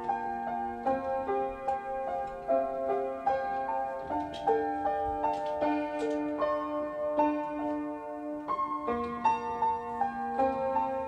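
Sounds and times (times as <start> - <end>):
acoustic piano single notes: 0.0 - 11.0.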